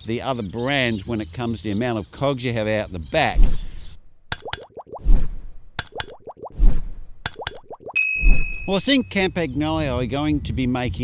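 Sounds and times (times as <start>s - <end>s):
sharp clicks: 4.3s - 4.8s, 5.8s - 6.3s, 7.2s - 7.7s
bell-like ding: 8.0s - 9.1s.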